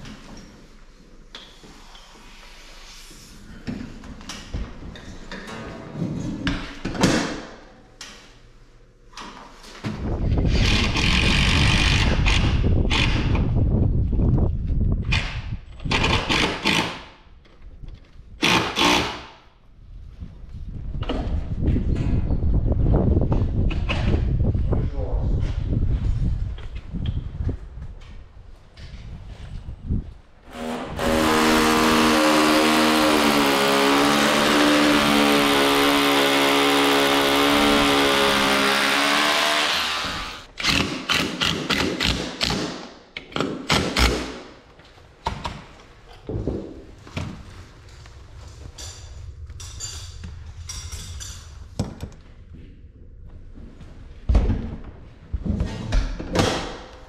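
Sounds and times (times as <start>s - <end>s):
power tool motor running: 30.5s - 40.5s.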